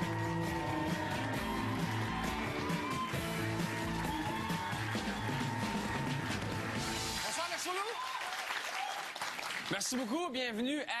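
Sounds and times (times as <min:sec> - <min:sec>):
high whoops: 0:00.0 - 0:06.4, 0:07.8 - 0:09.1
band theme music: 0:00.0 - 0:07.7
audience applauding and cheering: 0:00.0 - 0:10.3.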